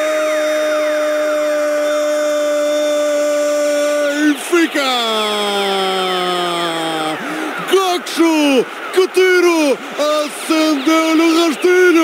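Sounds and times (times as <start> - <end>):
commentator shouting goal: 0.0 - 12.0.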